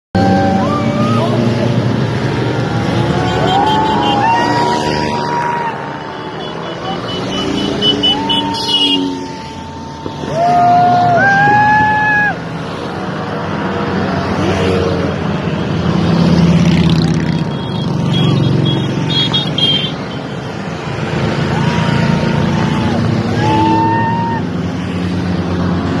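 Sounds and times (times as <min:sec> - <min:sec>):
crowd voices: 0:00.2 - 0:13.2, 0:20.2 - 0:26.0
paramotor engines droning: 0:00.2 - 0:13.2
horn toots sliding in pitch: 0:03.2 - 0:10.3.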